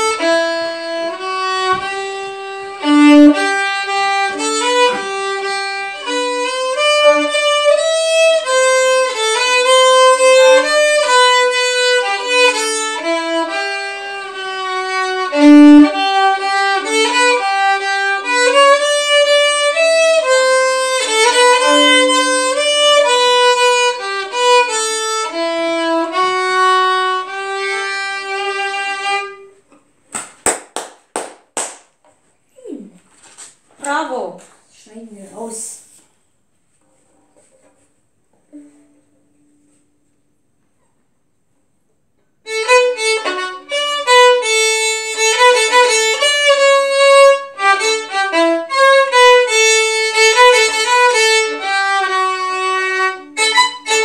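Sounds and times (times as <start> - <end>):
violin playing a melody: 0.0 - 29.7, 42.4 - 54.0.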